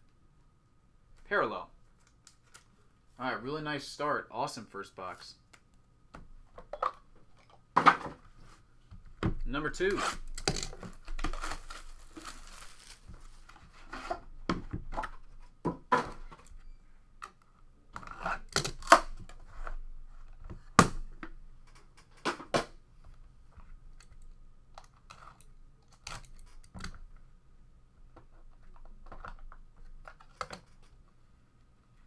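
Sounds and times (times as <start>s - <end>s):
wrapping being torn: 10.1s - 13.5s.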